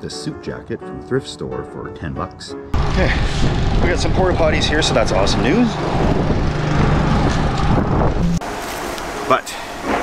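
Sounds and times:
wind buffeting microphone: 0:02.8 - 0:08.4.

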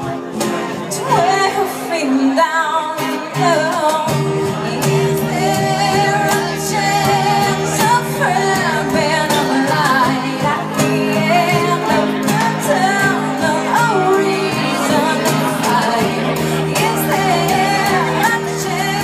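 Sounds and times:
woman singing: 0:00.8 - 0:19.0.

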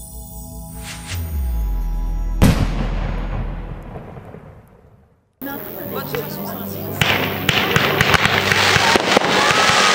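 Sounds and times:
deep rumbling boom: 0:01.2 - 0:05.3.

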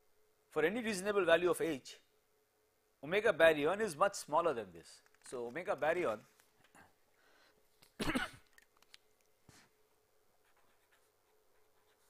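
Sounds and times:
man coughing: 0:08.0 - 0:08.5.

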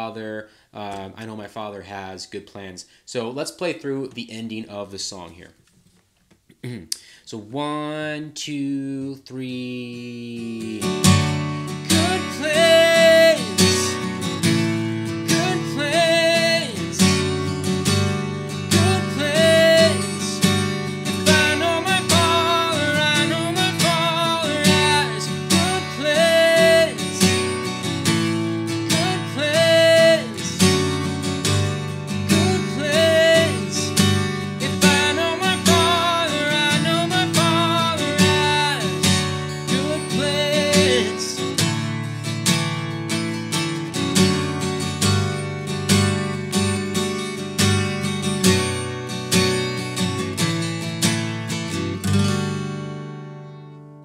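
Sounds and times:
man singing: 0:07.3 - 0:17.5, 0:18.5 - 0:27.6, 0:28.7 - 0:41.8
acoustic guitar strumming: 0:09.8 - 0:54.0.

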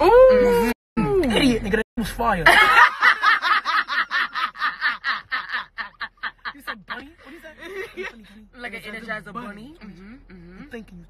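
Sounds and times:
women laughing: 0:02.5 - 0:07.0.

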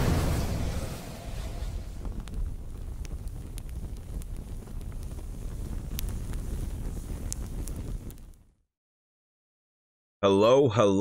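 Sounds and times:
flames low rumble: 0:00.0 - 0:08.7
sharp fire crackles: 0:00.0 - 0:08.7.

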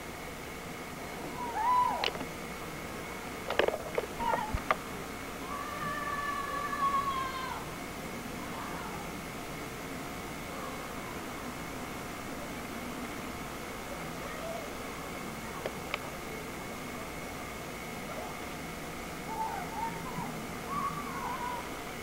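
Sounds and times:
sharp clicks: 0:03.5 - 0:04.8.

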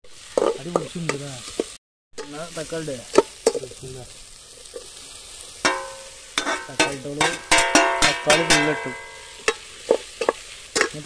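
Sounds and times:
onions sizzling: 0:00.0 - 0:11.0
metal spatula scraping pot: 0:00.3 - 0:02.4, 0:05.6 - 0:11.0
sharp ringing metal strikes: 0:05.7 - 0:09.5.

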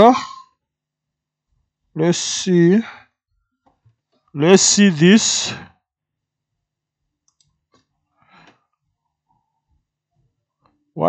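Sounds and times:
faint clicks: 0:07.2 - 0:08.6.

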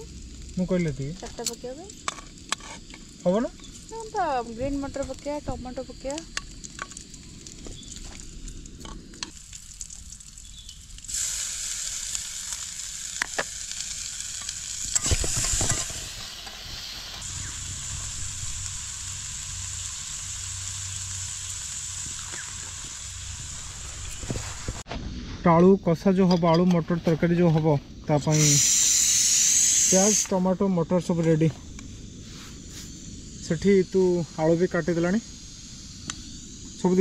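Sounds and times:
food sizzling in hot oil: 0:00.0 - 0:24.9, 0:28.2 - 0:37.0.

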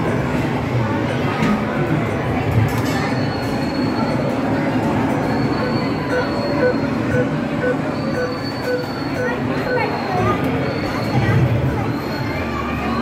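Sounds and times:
electronic beeping: 0:05.2 - 0:11.2
high tyre squeal: 0:07.9 - 0:09.1.

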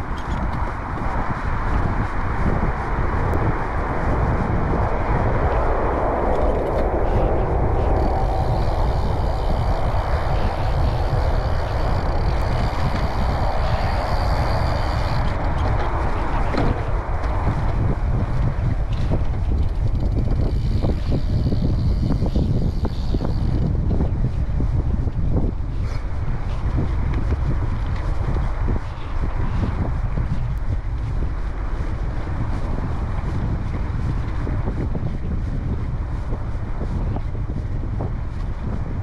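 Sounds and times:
bike tyres rolling on dirt: 0:00.0 - 0:39.0
wind rush over microphone: 0:00.0 - 0:39.0.

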